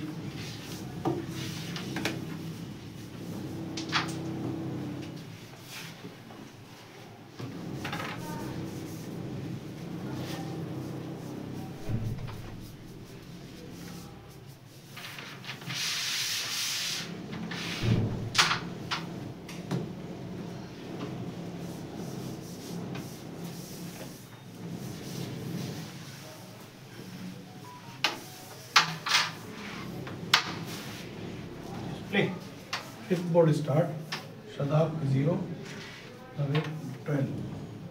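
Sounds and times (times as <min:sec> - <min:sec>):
brush sweeping wooden board: 0:00.2 - 0:03.7, 0:07.6 - 0:18.0, 0:21.4 - 0:26.5, 0:29.5 - 0:31.4.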